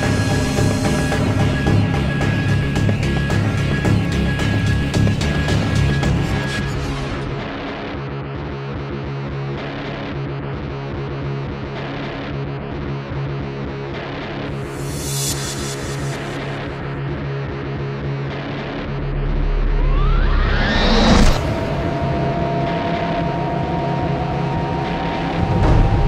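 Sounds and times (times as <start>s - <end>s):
background music with steady beat: 0.0s - 19.2s
rising sweep: 14.6s - 17.0s, 19.0s - 26.0s
low rumble: 18.8s - 26.0s.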